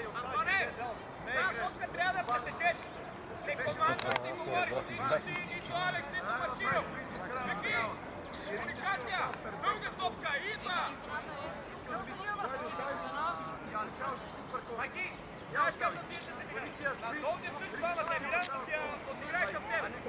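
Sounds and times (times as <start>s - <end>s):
people shouting calls: 0.0s - 20.0s.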